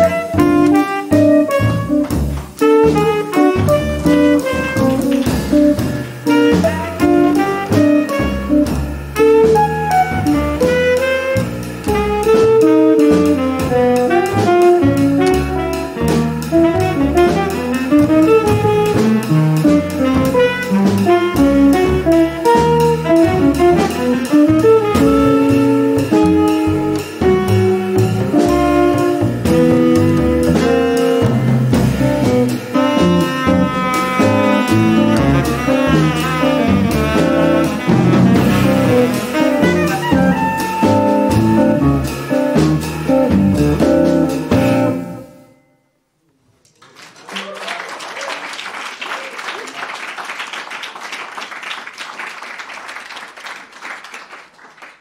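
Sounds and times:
tenor saxophone: 0:00.0 - 0:45.3
jazz quartet playing: 0:00.0 - 0:45.5
applause: 0:46.7 - 0:55.0.

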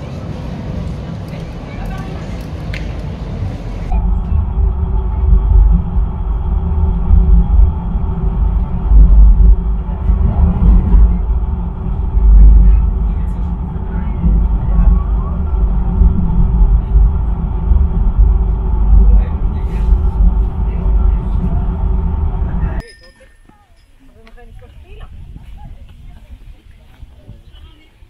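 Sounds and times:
funicular car rumbling: 0:00.0 - 0:28.0.

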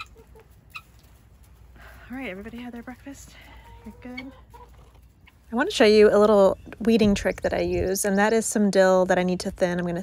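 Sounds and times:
hens clucking softly: 0:00.0 - 0:01.2, 0:03.4 - 0:05.4.

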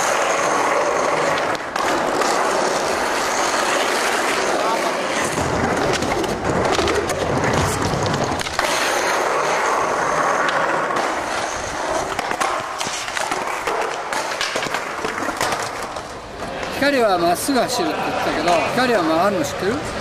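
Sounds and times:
skateboard clacking on ground: 0:00.0 - 0:16.8
skateboard wheels rolling on concrete: 0:00.0 - 0:20.0.

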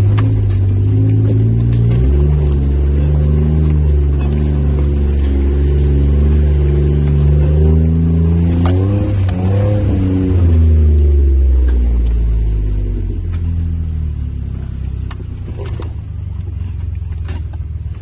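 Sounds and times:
engine heard from inside cab: 0:00.0 - 0:18.0.

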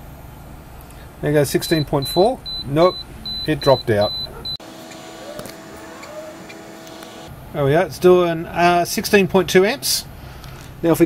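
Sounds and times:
cooling fan hum: 0:00.0 - 0:11.0.

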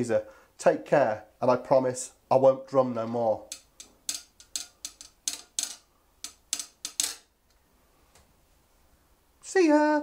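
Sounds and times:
knife tapping rhythm: 0:03.4 - 0:07.3.

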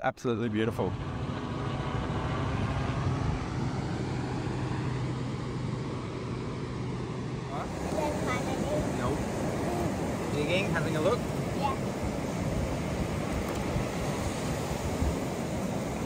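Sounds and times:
vehicle engine humming: 0:00.5 - 0:16.0
faint voices outdoors: 0:07.4 - 0:12.0.

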